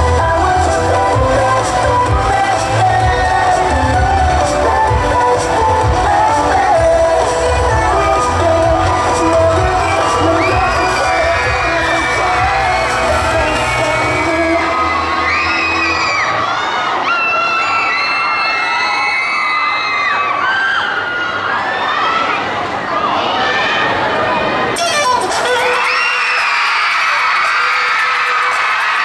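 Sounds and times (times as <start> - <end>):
dance track with heavy bass: 0.0 - 16.2
crowd screaming and cheering: 0.0 - 29.0.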